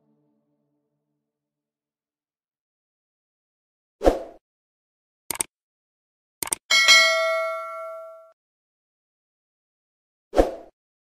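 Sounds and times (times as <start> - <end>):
notification bell ding: 6.7 - 8.3.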